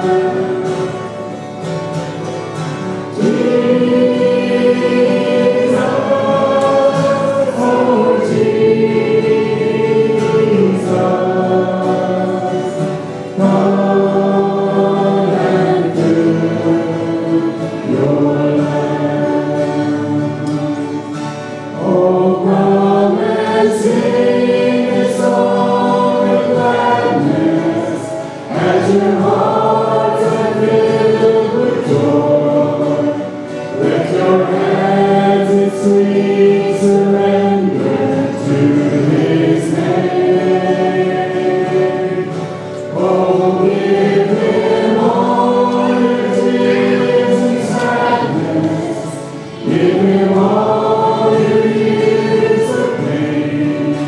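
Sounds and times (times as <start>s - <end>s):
acoustic guitar: 0.0s - 54.0s
congregation singing along: 0.0s - 54.0s
group singing a hymn: 0.0s - 54.0s.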